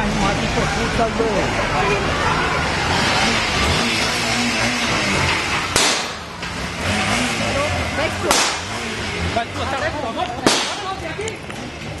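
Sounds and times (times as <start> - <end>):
background noise: 0.0 - 12.0
sharp crack: 5.3 - 6.6, 8.2 - 8.9, 10.2 - 11.4.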